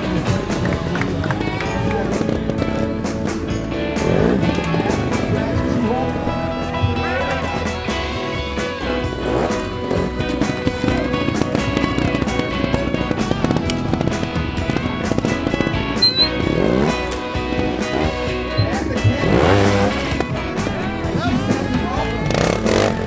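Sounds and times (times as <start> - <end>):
background music: 0.0 - 23.0
motorcycle engine revving: 0.0 - 23.0.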